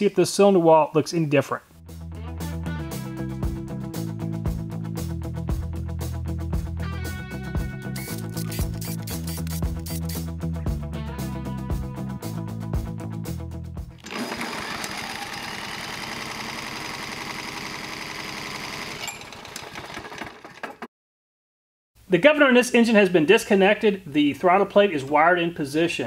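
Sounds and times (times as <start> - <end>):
background music with steady beat: 1.8 - 14.0
small engine clattering: 14.0 - 20.9.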